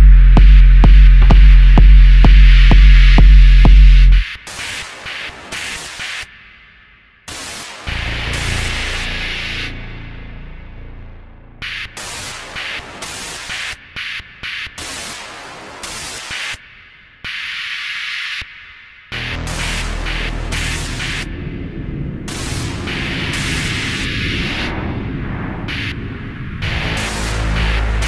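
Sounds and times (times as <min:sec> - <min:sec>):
low droning bass: 0:00.0 - 0:04.2, 0:07.9 - 0:12.6, 0:19.2 - 0:23.8, 0:24.7 - 0:28.0
chopped hissing noise bursts: 0:00.0 - 0:28.0.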